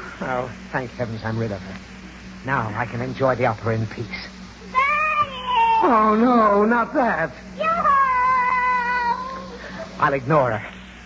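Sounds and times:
high drawn-out wail: 0:04.7 - 0:06.9, 0:07.6 - 0:09.8.

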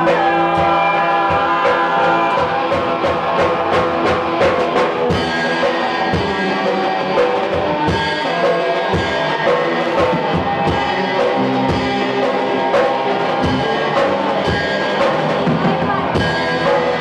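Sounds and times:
drum kit beat: 0:00.0 - 0:17.0
electric guitar: 0:00.0 - 0:17.0.

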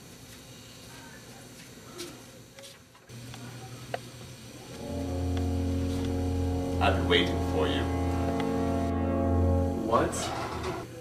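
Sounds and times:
low steady hum: 0:04.6 - 0:10.9
background music with deep bass: 0:04.8 - 0:10.9.

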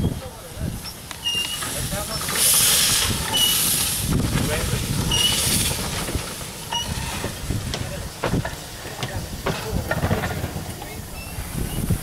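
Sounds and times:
steam hissing from locomotive: 0:00.0 - 0:12.0.

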